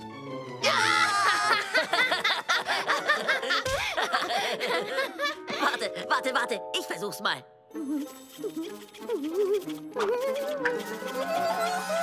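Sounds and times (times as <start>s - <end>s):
cartoon characters laughing: 1.0s - 6.0s.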